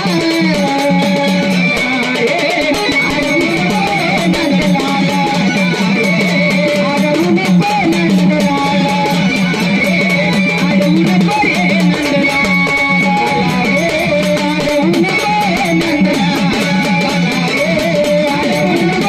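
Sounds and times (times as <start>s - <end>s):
hand drum rhythm: 0.0s - 19.0s.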